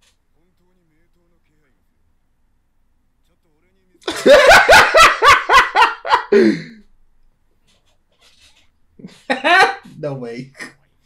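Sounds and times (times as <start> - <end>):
man laughing heartily: 4.1 - 6.8, 9.0 - 9.8.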